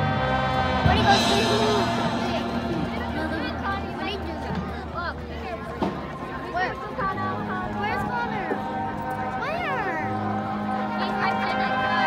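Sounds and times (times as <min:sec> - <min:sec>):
marching band sustained chord: 0:00.0 - 0:12.0.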